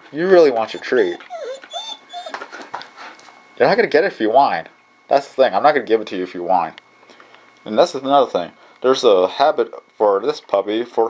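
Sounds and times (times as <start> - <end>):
puppy whimpering: 0.4 - 2.9.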